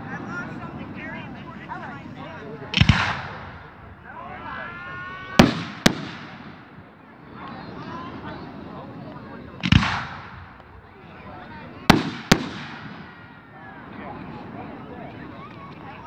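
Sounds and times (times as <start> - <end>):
fireworks bangs: 2.7 - 3.9, 5.3 - 7.0, 9.6 - 10.8, 11.8 - 13.4
deep fireworks boom: 5.4 - 6.9, 11.9 - 13.4.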